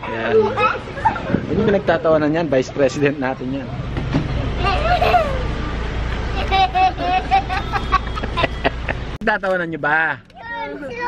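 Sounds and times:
young children laughing: 0.0s - 1.7s, 4.4s - 9.2s.

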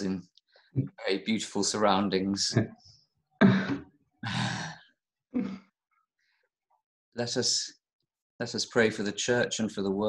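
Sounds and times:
man sighing: 3.4s - 4.8s.

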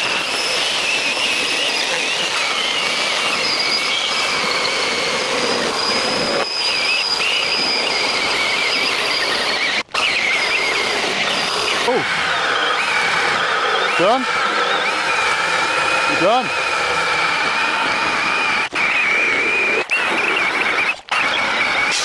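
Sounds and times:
chainsaws cutting wood: 0.0s - 22.0s.

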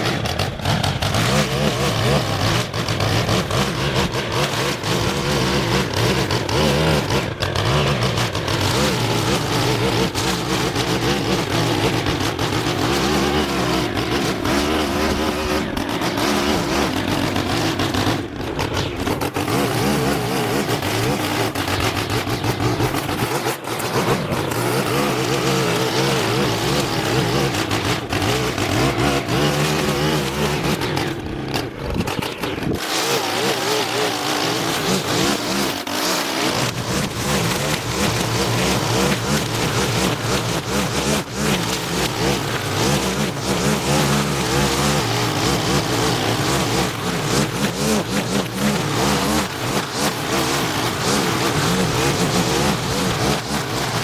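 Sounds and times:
lawn equipment engine running: 0.0s - 54.0s.

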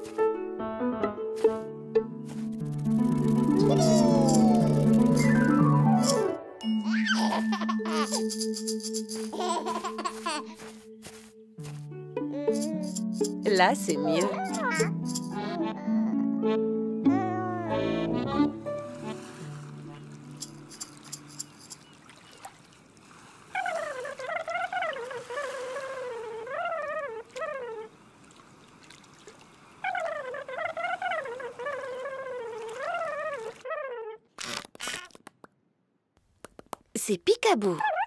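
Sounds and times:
animation background music: 0.0s - 21.6s.

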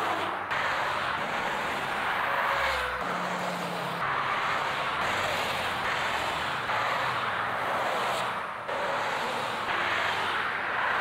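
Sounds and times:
passing cars tyre and engine noise: 0.0s - 11.0s.

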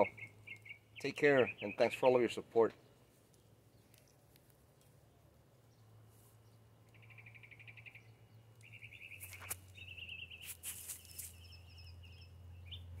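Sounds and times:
small bird trilled chirps: 0.0s - 2.1s, 6.5s - 13.0s.

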